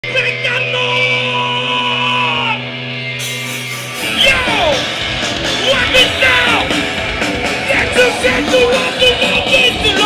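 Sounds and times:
droning electric guitar and bass chord: 0.0 - 10.0.

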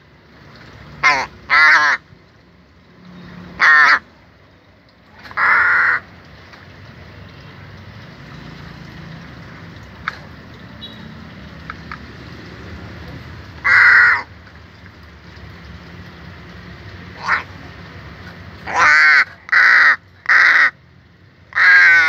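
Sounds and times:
crow cawing: 1.0 - 2.0, 3.6 - 4.0, 5.3 - 6.1, 13.6 - 14.3, 17.2 - 17.5, 18.6 - 20.8, 21.5 - 22.0.

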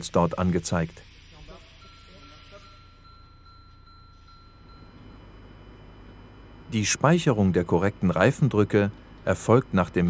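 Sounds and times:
high chime-like electronic tone: 0.4 - 8.7
low hum: 1.8 - 10.0.

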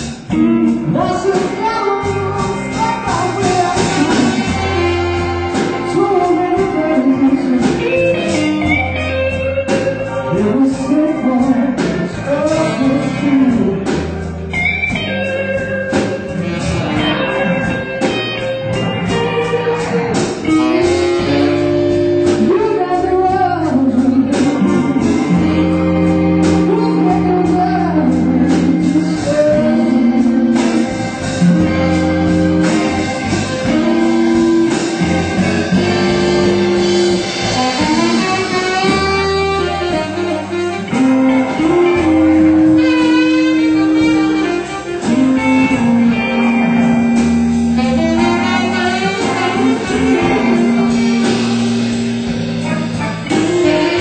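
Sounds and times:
electric guitar held notes: 0.0 - 54.0
live blues band playing: 0.0 - 54.0.

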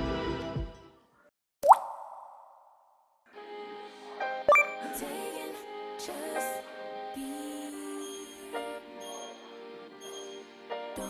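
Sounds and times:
upward-swooping pop blip: 1.6 - 2.9, 4.5 - 4.9.

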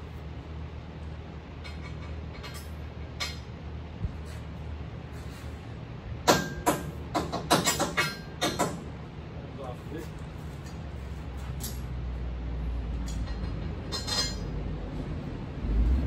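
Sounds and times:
steady low hum: 0.0 - 16.0
metal tools clanking on steel: 1.6 - 3.5, 7.5 - 8.8, 11.5 - 12.0, 13.0 - 14.6.

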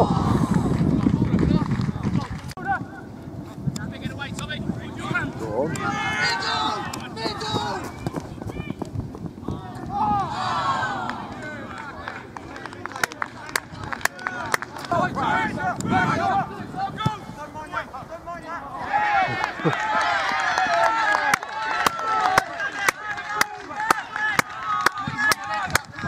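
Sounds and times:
players shouting: 4.9 - 8.7, 9.4 - 25.7.

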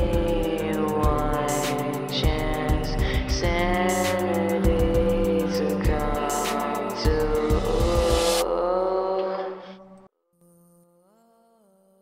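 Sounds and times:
trap beat with rapid hi-hats: 0.0 - 8.4.

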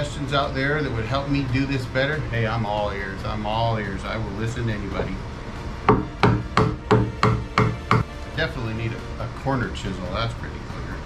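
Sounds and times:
mallet striking chisel into wood: 5.9 - 8.1.

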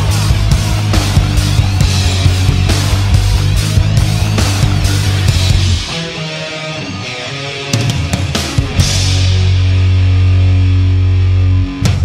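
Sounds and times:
drum hits: 0.0 - 5.9
distorted electric guitar note: 0.0 - 12.0.

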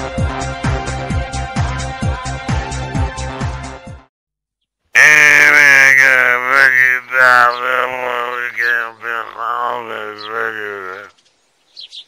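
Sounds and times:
man groaning: 5.0 - 11.1.

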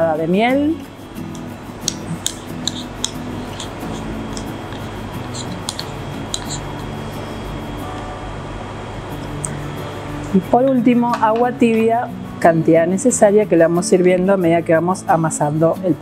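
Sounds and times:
background music with held notes: 0.0 - 16.0
metal spoon clinking ceramic bowl: 1.9 - 6.8.

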